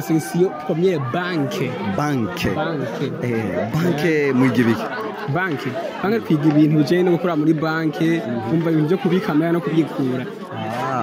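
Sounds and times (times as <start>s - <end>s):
background chatter: 0.0s - 11.0s
men talking into a microphone: 0.0s - 11.0s.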